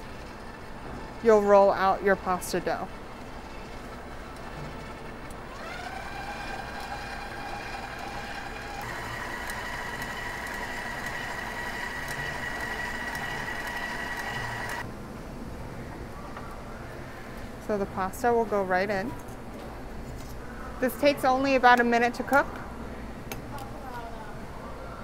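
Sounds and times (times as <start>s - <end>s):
stand mixer motor whine: 5.4s - 14.8s.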